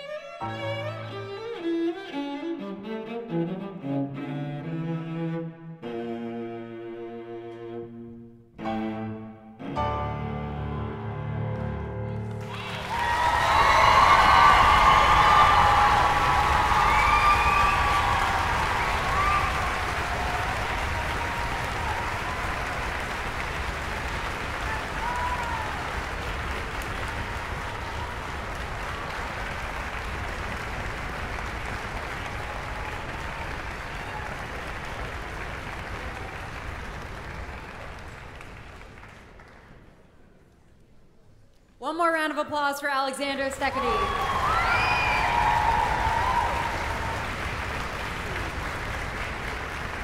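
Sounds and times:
audience clapping: 11.6 - 40.9, 43.5 - 50.0
whoops and cheers: 12.4 - 22.9, 24.6 - 26.1, 43.7 - 47.4.

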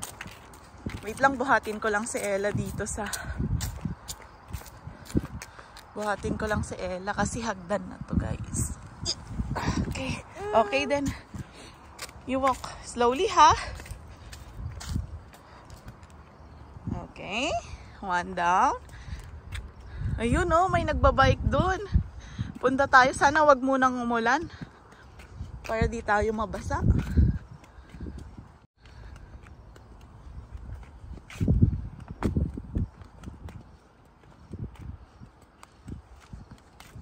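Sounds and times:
footsteps on concrete stairs: 0.0 - 7.4, 8.8 - 16.8, 17.8 - 20.7, 21.8 - 37.0.

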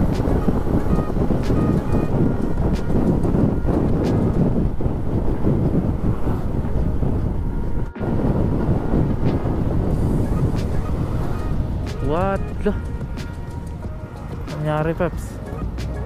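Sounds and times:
road noise: 0.0 - 16.0
wind on microphone: 0.0 - 16.0.

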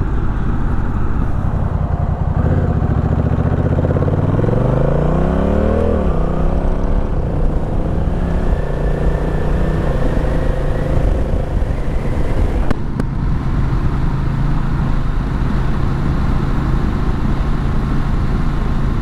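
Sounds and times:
motorcycle engine accelerating: 0.0 - 19.0.

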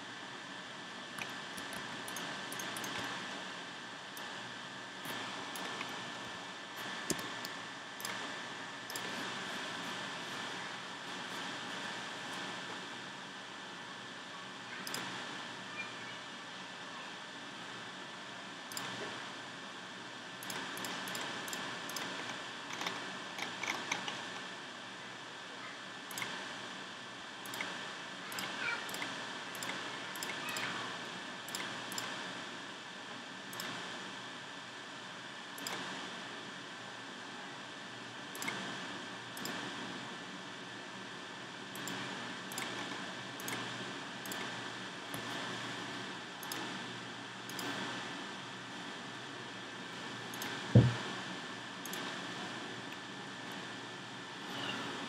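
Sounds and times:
mouse and keyboard clicks: 1.2 - 3.1, 6.8 - 8.2, 20.4 - 24.2.

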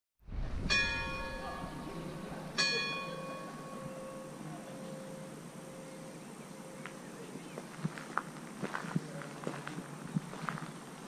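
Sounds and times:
large tower bell ringing: 0.7 - 7.4.

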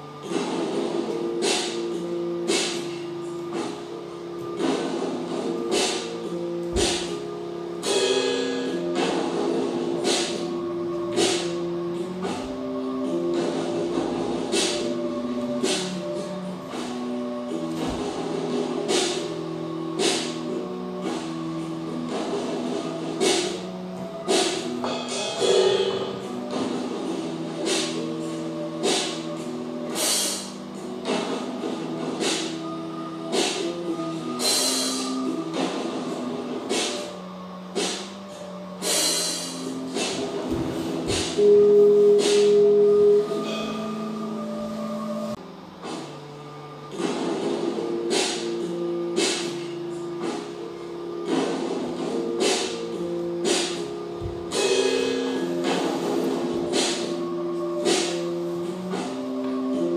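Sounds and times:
layered sustained music notes: 0.0 - 59.9.

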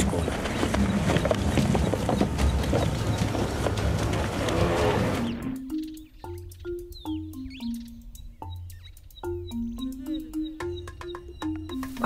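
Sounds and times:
simple melody of short notes: 5.1 - 12.0.

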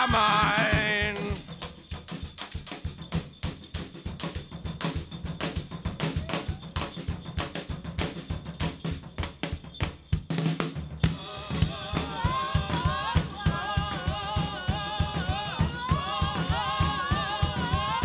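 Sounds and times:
voices singing: 0.0 - 1.4, 11.1 - 18.0
drum kit playing fast: 0.0 - 18.0.

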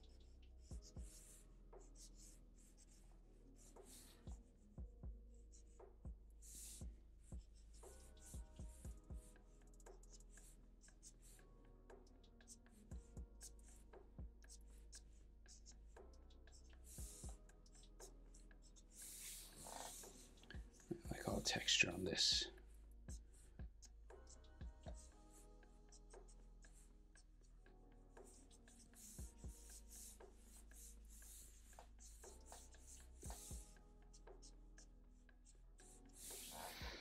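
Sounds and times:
marker scratching on paper: 0.0 - 4.7, 5.5 - 27.5, 28.1 - 37.0.

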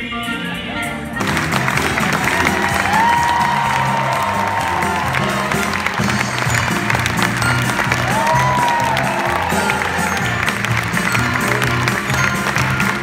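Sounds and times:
live band music: 0.0 - 13.0
audience applause: 1.2 - 13.0.

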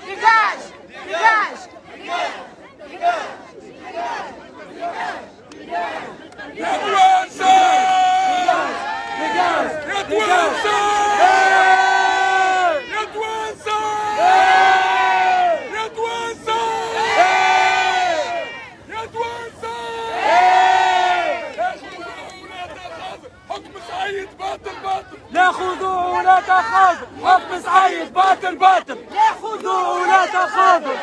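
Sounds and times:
crowd chanting in unison: 0.0 - 31.0.

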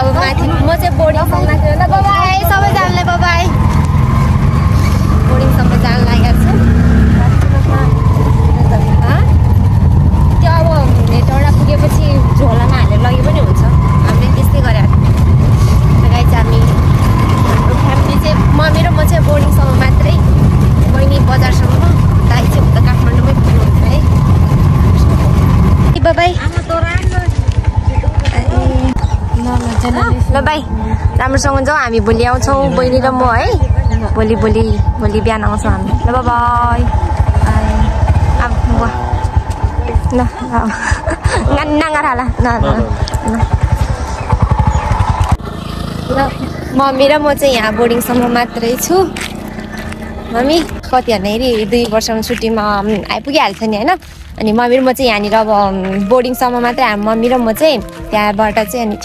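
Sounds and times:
people talking: 0.0 - 44.4, 46.0 - 59.0
vehicle engine and road rumble: 0.0 - 59.0.

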